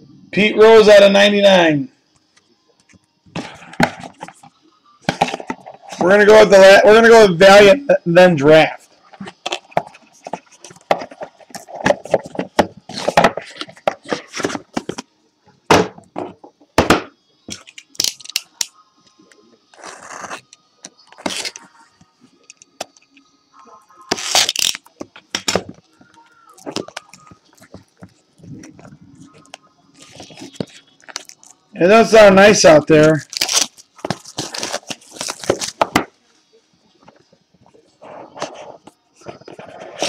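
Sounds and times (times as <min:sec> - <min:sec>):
foil packs tearing and crackling: 0:24.1 - 0:24.9, 0:30.0 - 0:31.6, 0:32.9 - 0:35.9
packaging rustling: 0:24.1 - 0:31.6, 0:33.0 - 0:36.0.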